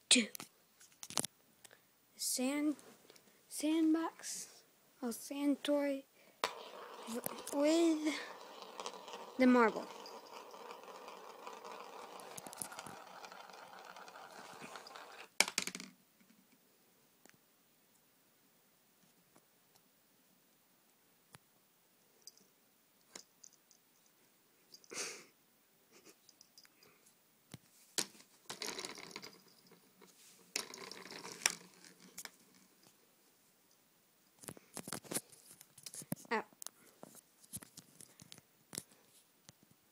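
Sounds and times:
marble rattling through plastic toy: 6.4s - 15.9s, 28.0s - 33.0s.

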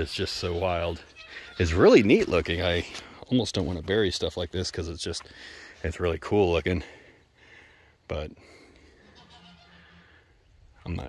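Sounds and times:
goat bleating: 0.5s - 2.4s, 9.0s - 10.2s.

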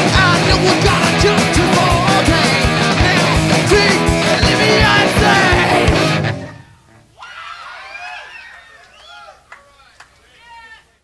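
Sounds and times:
punk rock band with electric guitars: 0.0s - 6.7s
crowd yelling and whooping: 4.3s - 11.0s.

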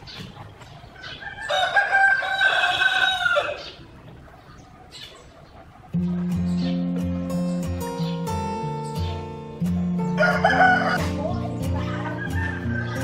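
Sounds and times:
chicken clucking: 0.0s - 6.8s
rooster crowing: 1.2s - 3.8s, 10.2s - 11.0s.

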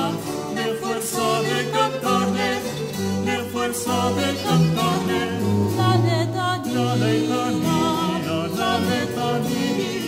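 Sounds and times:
choir singing: 0.0s - 10.0s
low held bass line: 5.0s - 6.9s.

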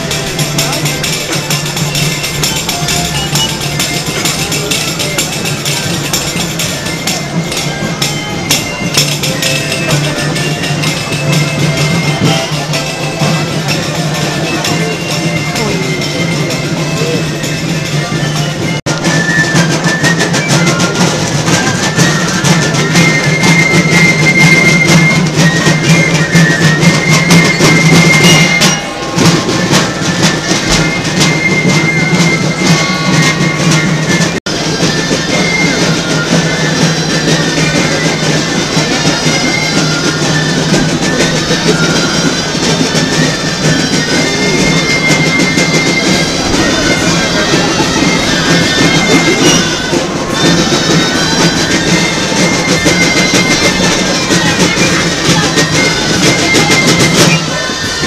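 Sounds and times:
busy drumming: 0.0s - 58.0s
street band playing folk tune: 0.0s - 58.0s.

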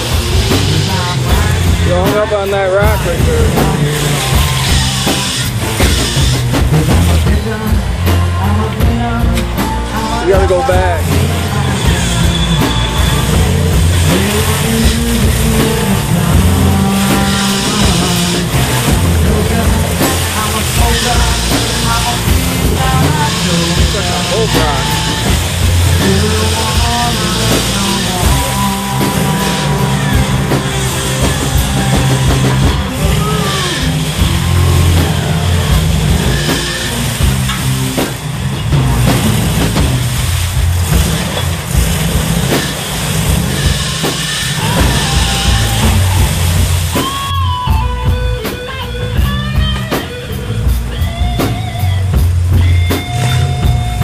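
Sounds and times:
music with vocals: 0.0s - 54.0s
truck engine revving: 0.0s - 54.0s.

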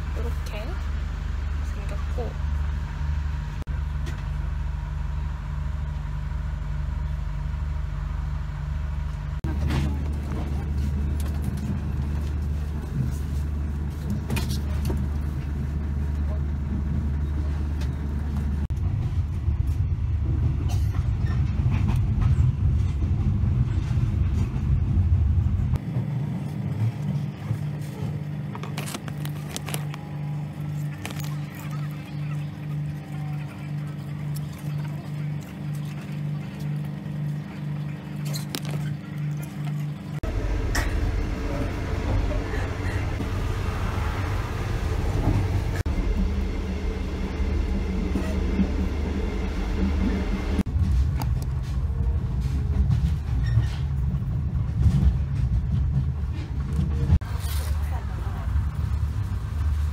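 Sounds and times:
train running low rumble: 0.0s - 59.9s.

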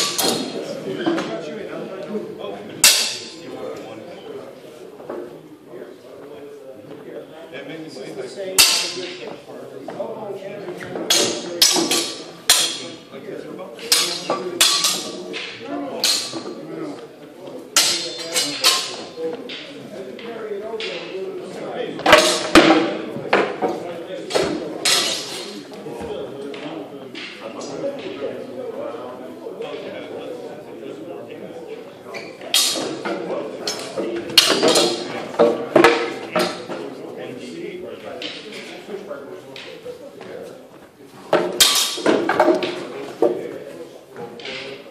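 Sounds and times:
training swords clacking on shields: 0.0s - 1.2s, 2.8s - 3.4s, 8.6s - 9.3s, 10.8s - 13.0s, 13.8s - 16.6s, 17.8s - 19.7s, 22.0s - 25.6s, 32.5s - 36.8s, 41.3s - 43.4s.

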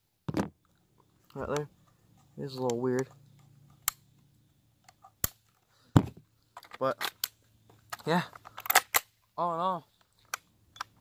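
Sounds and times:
rifle clicks: 2.6s - 5.6s, 6.6s - 9.2s.

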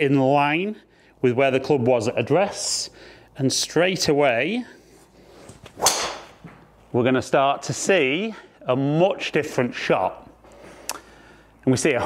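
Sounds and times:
golf club striking ball: 5.7s - 6.6s.

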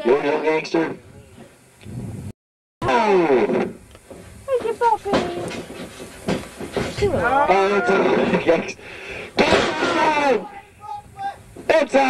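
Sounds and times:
men yelling: 7.0s - 8.7s, 9.3s - 12.0s.

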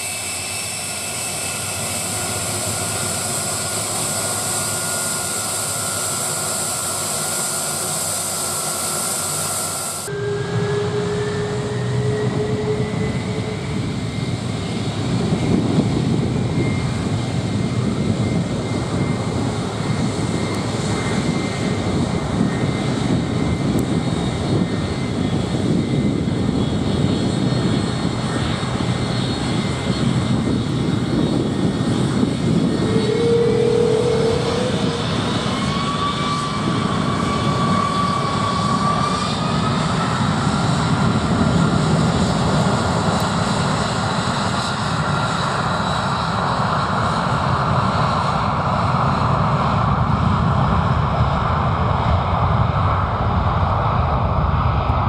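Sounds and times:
jet engine whine rising: 0.0s - 55.0s
jet engines roaring: 0.0s - 55.0s.

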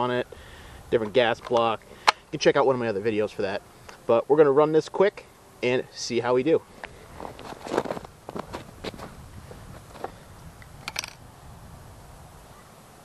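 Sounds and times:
rifle handling knocks and clicks: 1.0s - 2.2s, 10.8s - 11.2s
footsteps in snow: 6.7s - 10.2s
clothing rustle: 6.8s - 10.2s.

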